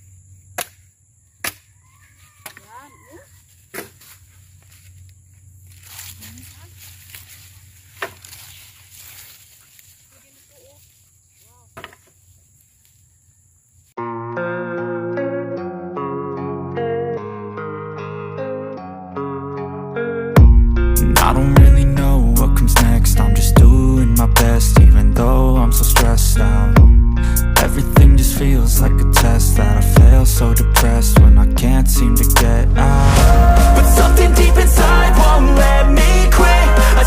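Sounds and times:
dry branches snapping: 5.8 - 8.7
background music: 14.0 - 37.0
high-pitched drone: 32.5 - 37.0.

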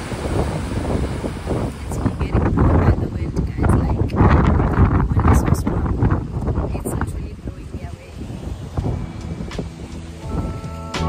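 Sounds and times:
wind buffeting microphone: 0.0 - 11.0
music with sustained notes: 8.5 - 11.0.

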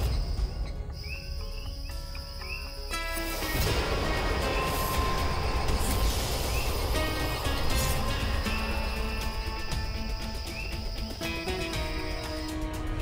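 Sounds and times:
light bird-like chirps: 0.0 - 3.2, 4.4 - 12.7
low drone: 0.0 - 13.0.

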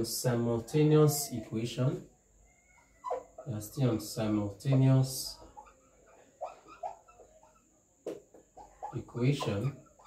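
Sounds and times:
marker squeaking on whiteboard: 2.7 - 10.0.

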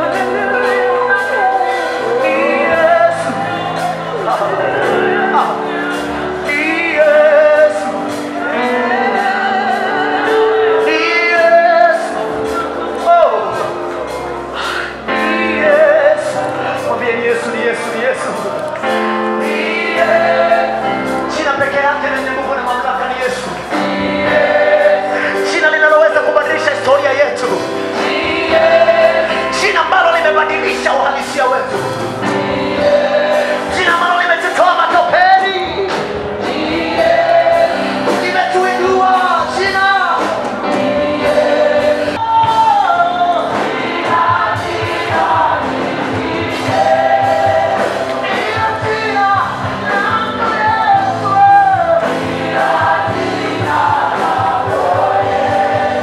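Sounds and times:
choir singing gospel song: 0.0 - 56.0
steady beat: 27.4 - 56.0.

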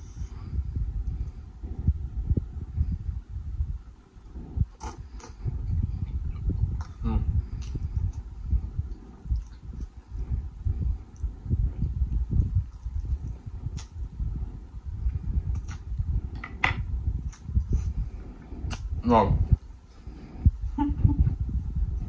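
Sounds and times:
chewing and wet mouth sounds: 4.2 - 16.4, 17.1 - 19.0.

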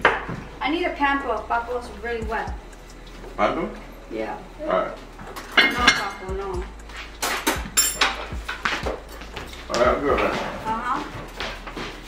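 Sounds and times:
dull low thumps: 0.0 - 12.0
dishes and cups clinking: 7.2 - 8.8.

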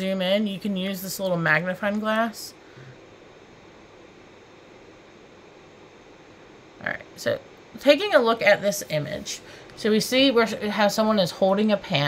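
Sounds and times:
woman speaking: 0.0 - 2.6, 6.8 - 12.0
low room tone hiss: 0.0 - 12.0.

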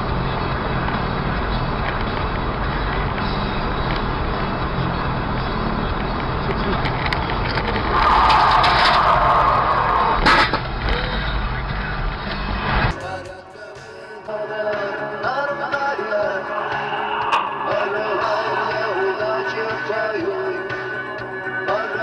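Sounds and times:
car engine and road noise: 0.0 - 22.0
high-pitched noise: 15.8 - 20.6.

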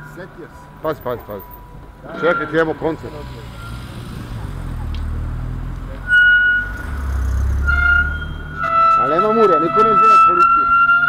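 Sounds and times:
low vehicle rumble: 0.0 - 10.8
high-pitched horn blasts: 2.0 - 4.2, 6.0 - 11.0.

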